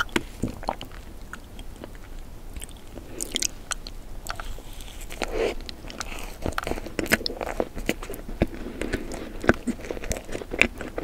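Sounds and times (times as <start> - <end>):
crunchy chewing: 0.0 - 11.0.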